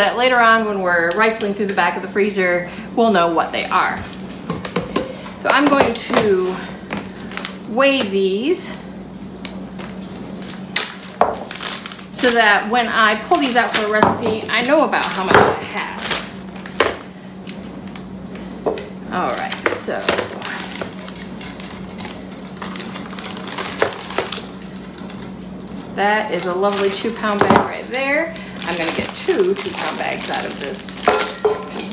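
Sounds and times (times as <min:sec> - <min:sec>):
steady low hum: 0:00.0 - 0:31.9
plastic bag rustling: 0:09.8 - 0:18.5, 0:19.2 - 0:31.9
frozen tomatoes knocking together: 0:13.6 - 0:17.1.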